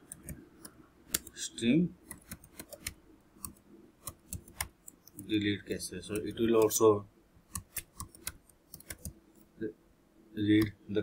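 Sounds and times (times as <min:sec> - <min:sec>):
keyboard keys clicking: 0:07.6 - 0:09.2.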